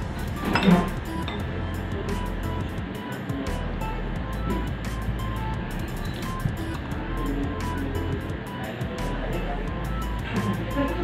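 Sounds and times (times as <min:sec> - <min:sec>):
background music: 0:00.0 - 0:11.0
metal spoon clinking on dish: 0:00.4 - 0:01.4.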